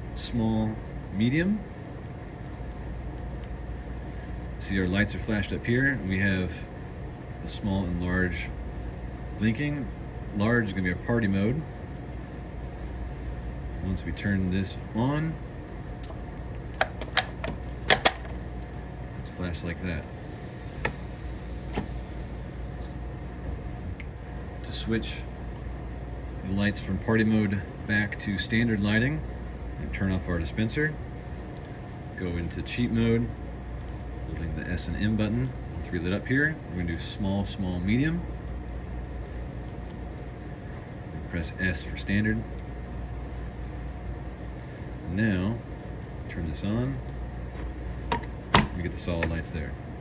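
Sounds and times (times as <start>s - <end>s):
low mechanical hum: 0.0s - 50.0s.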